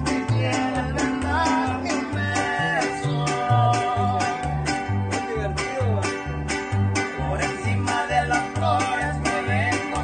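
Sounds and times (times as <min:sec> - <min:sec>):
alternating bass notes: 0:00.0 - 0:10.0
strummed guitars: 0:00.0 - 0:10.0.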